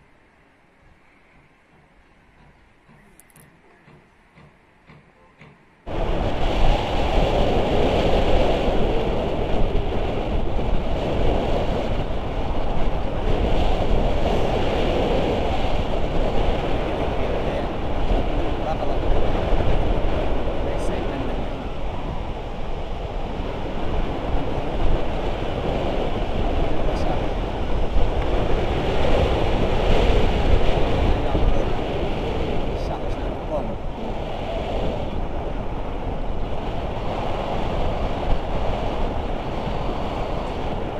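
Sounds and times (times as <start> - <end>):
wind roaring over microphone: 5.8 - 40.9.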